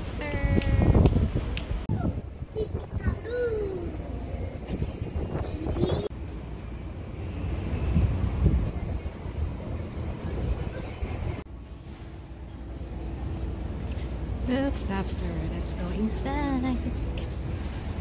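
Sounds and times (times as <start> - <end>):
wind on microphone: 0.0 - 6.1, 7.6 - 11.4
low rumble of traffic: 0.0 - 18.0
voices of passers-by: 0.0 - 18.0.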